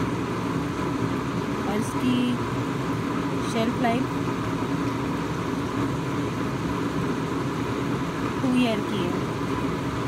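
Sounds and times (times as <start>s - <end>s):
low even hum: 0.0s - 10.0s.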